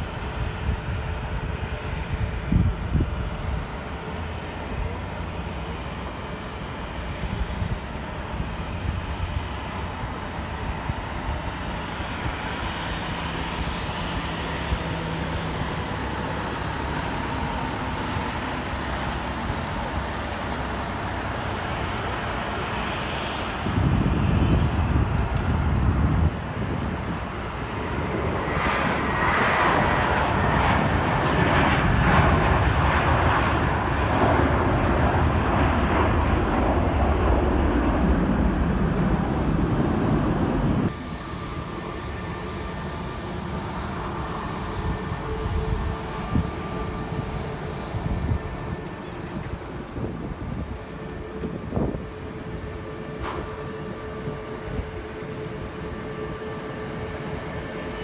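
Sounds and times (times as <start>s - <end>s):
jet engine whine: 0.0s - 58.0s
jet engines running loudly: 0.0s - 58.0s.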